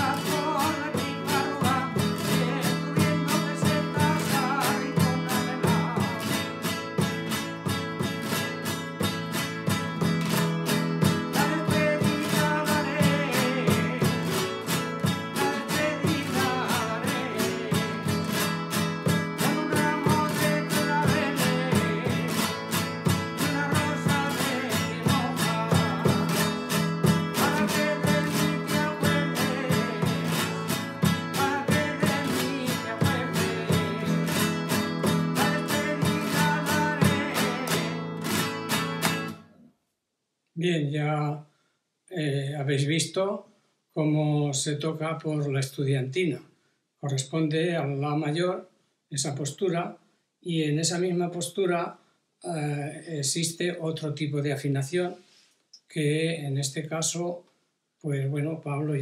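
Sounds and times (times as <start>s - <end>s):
older man singing: 0.0s - 6.5s, 11.2s - 18.5s, 19.1s - 38.1s
guitar strummed quickly: 0.0s - 39.4s.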